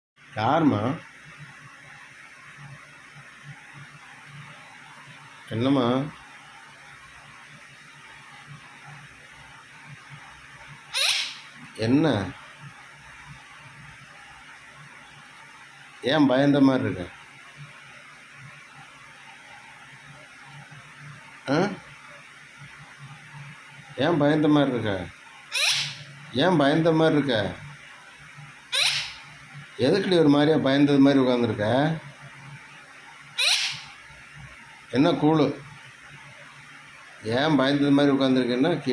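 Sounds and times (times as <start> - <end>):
low room noise: 0.2 - 38.9
parakeet screeching: 10.9 - 11.6, 25.5 - 26.2, 28.7 - 29.4, 33.3 - 34.0.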